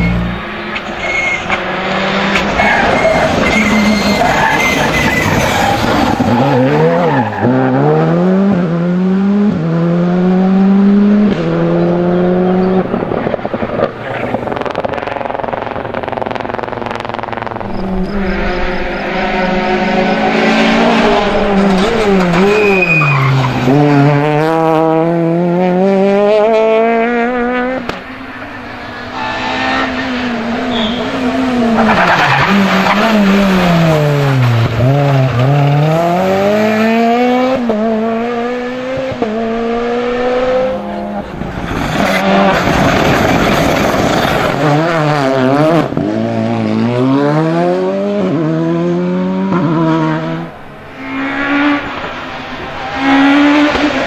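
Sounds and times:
rally car engines revving: 0:00.0 - 0:54.0.

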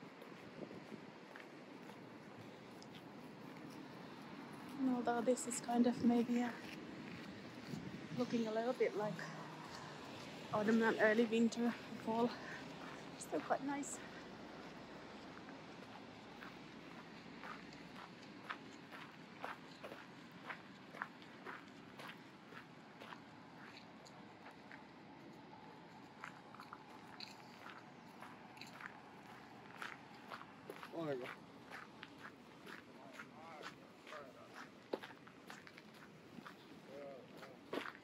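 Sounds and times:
person speaking: 0:10.5 - 0:12.6
footsteps crunching on gravel: 0:26.1 - 0:38.0.

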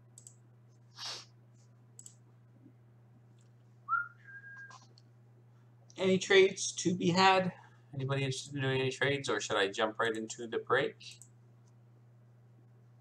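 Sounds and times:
steady low hum: 0:00.0 - 0:13.0
faint clicks: 0:00.1 - 0:00.4, 0:02.0 - 0:02.2
short hiss: 0:00.9 - 0:01.3
two-note whistle-like tone: 0:03.9 - 0:04.8.

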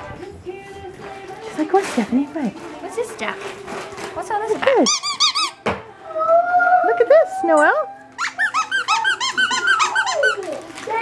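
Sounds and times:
squeaky dog toy squeaking: 0:04.6 - 0:05.6, 0:07.5 - 0:10.6.

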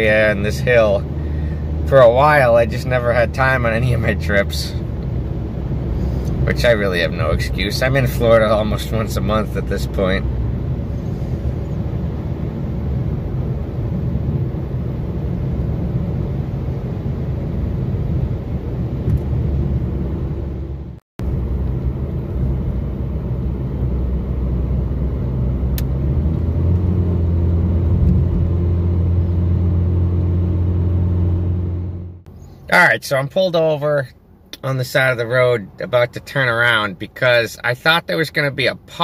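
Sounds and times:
car cabin road and engine noise: 0:00.0 - 0:39.0.

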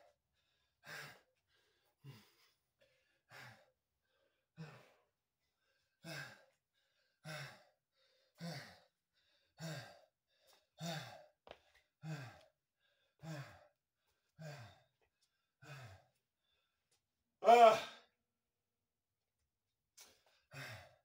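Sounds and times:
man breathing heavily: 0:00.0 - 0:16.9, 0:20.0 - 0:21.0.

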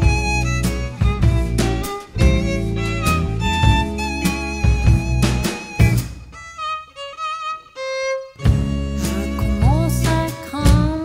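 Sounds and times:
solo violin phrase: 0:00.0 - 0:10.9.

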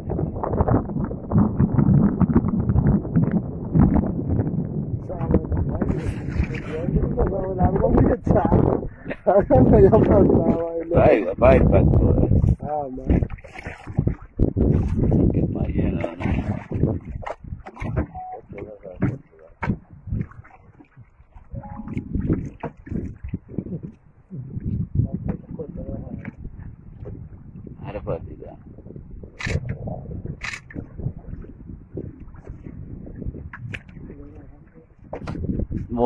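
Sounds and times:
water moving around a boat: 0:00.0 - 0:36.0
wind rumble on microphone: 0:00.0 - 0:36.0
people talking: 0:05.0 - 0:13.2, 0:15.6 - 0:16.4, 0:18.0 - 0:19.5, 0:25.0 - 0:26.3, 0:27.8 - 0:28.6, 0:34.0 - 0:34.9
brief steady tone: 0:18.1 - 0:18.6, 0:21.5 - 0:22.1.

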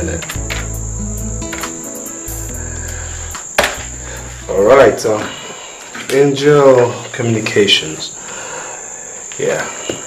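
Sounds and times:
low synth bass notes: 0:00.0 - 0:01.6, 0:02.3 - 0:04.9
steady high-pitched tone: 0:00.0 - 0:06.0
film score music: 0:00.2 - 0:04.7.

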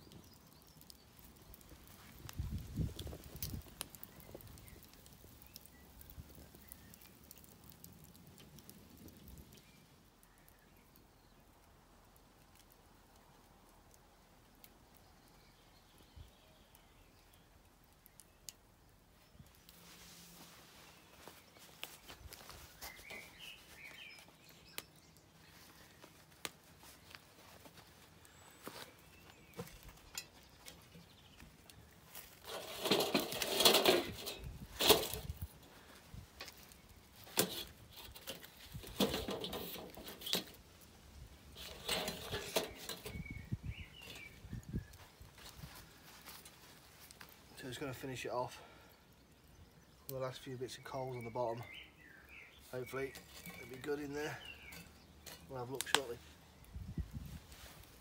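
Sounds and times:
logs knocking and scraping: 0:28.6 - 0:40.7, 0:41.5 - 0:44.4, 0:52.7 - 0:56.3
metallic clanks of pot on grate: 0:32.4 - 0:35.3, 0:37.3 - 0:40.6, 0:41.6 - 0:43.2.

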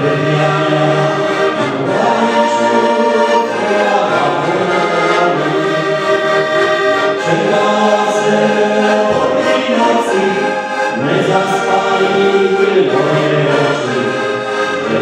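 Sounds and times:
button accordions playing folk tune: 0:00.0 - 0:15.0.

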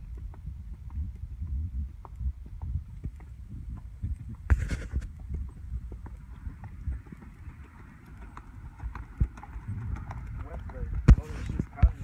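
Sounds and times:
horse hoofbeats on dirt: 0:00.0 - 0:12.0
low rumble: 0:00.0 - 0:12.0.

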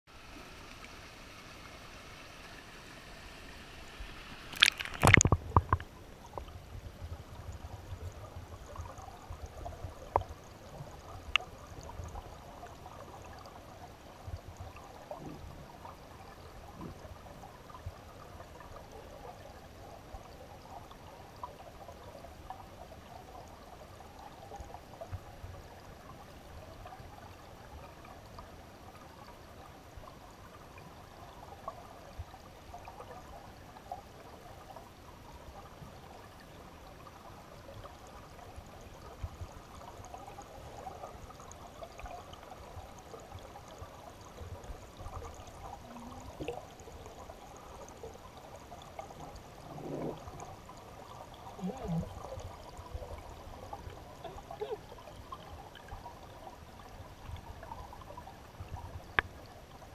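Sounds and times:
underwater stream burbling: 0:00.1 - 0:59.9
low knocks underwater: 0:04.6 - 0:06.5.

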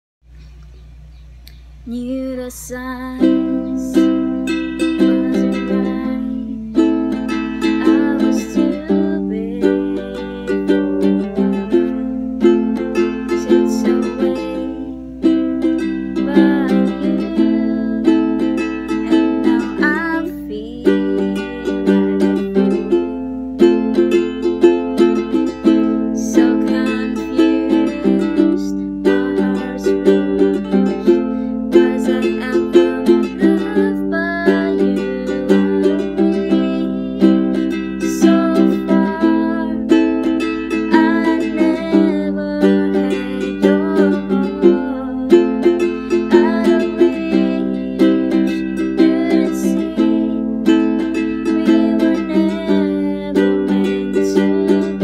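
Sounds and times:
ukulele strumming: 0:01.5 - 0:55.0.

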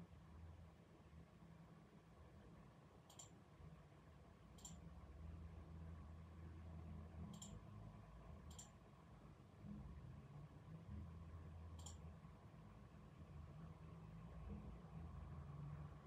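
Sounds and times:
sharp high clicks: 0:03.1 - 0:03.4, 0:04.6 - 0:04.8, 0:07.3 - 0:07.6, 0:08.5 - 0:08.8, 0:11.8 - 0:12.0.

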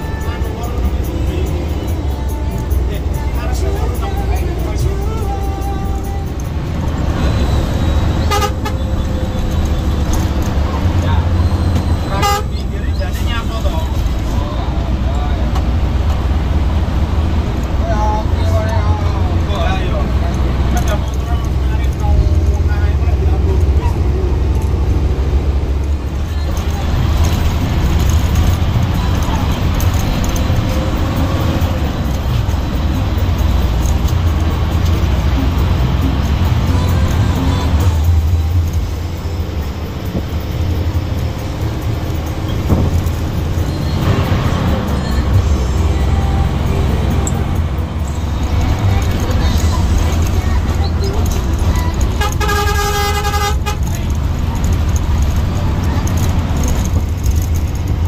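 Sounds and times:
bus diesel engine drone: 0:00.0 - 0:58.0
horn tooting: 0:07.2 - 0:10.1, 0:11.5 - 0:12.8, 0:51.3 - 0:54.2.

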